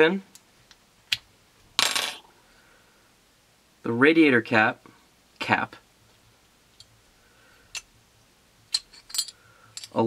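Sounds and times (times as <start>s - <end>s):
small metal parts clattering: 8.7s - 10.0s.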